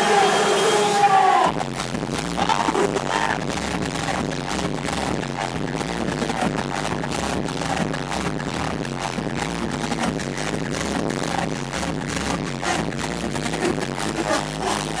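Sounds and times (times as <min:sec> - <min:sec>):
electronic dance music: 0:00.0 - 0:15.0.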